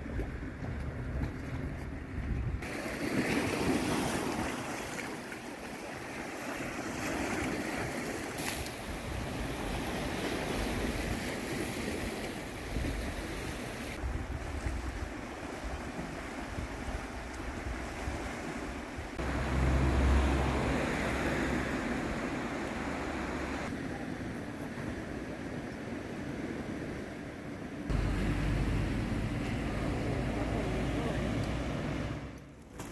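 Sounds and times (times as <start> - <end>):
wind on microphone: 0.0 - 2.9, 8.8 - 19.3
waves washing on pebbly shore: 2.6 - 23.8.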